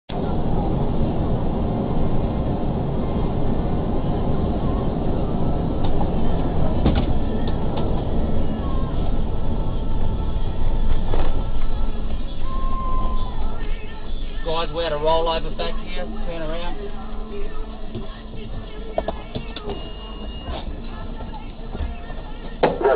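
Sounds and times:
vehicle interior road noise: 0:00.1 - 0:22.9.

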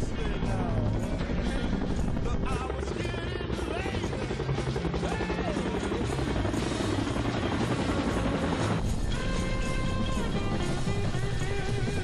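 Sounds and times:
helicopter rotor chopping: 0:00.0 - 0:12.0
music: 0:00.0 - 0:12.0.

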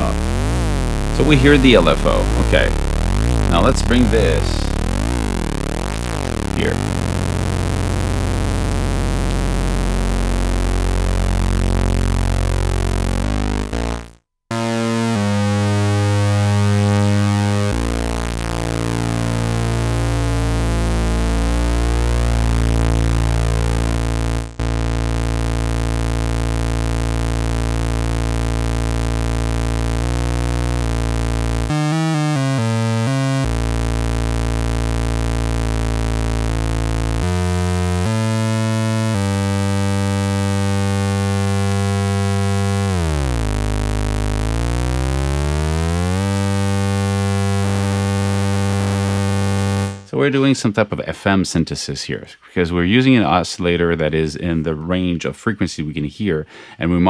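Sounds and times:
buzzy synthesizer tone: 0:00.0 - 0:50.2.

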